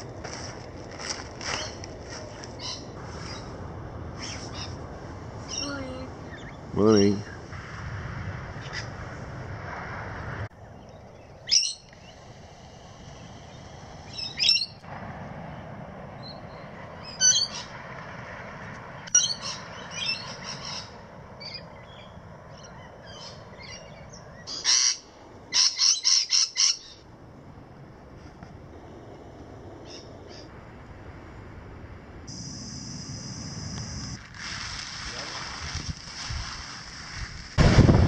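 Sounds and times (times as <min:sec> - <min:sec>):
birds calling: 0:01.5 - 0:03.6, 0:05.4 - 0:07.4, 0:16.2 - 0:17.8, 0:19.0 - 0:27.1
distant birdsong: 0:01.5 - 0:07.5, 0:10.5 - 0:27.6, 0:28.7 - 0:30.6.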